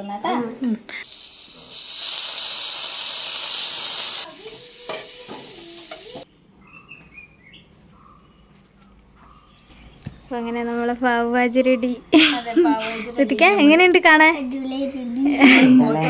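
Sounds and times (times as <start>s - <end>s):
food sizzling in a pan: 1.0s - 6.2s
faint bird chirps: 6.5s - 11.1s.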